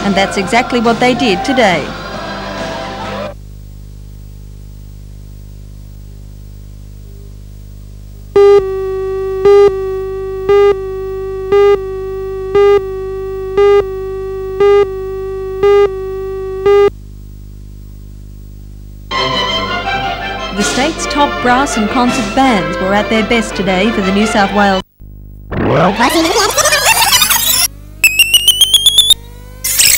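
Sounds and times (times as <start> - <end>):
low electrical hum: 0.0 - 29.9
short beeps: 8.4 - 16.9, 27.5 - 29.9
steady electronic tone: 8.4 - 16.9, 25.0 - 29.9.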